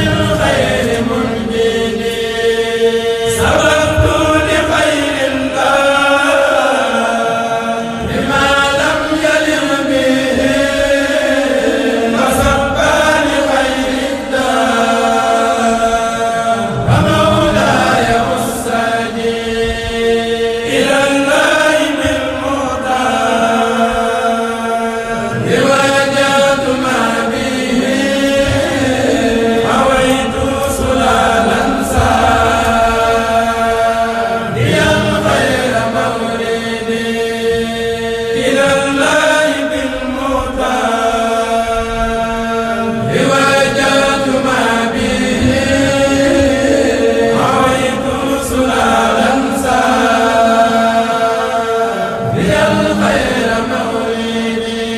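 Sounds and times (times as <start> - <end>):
men chanting together: 0.0 - 54.9
steady held drone note: 0.0 - 54.9.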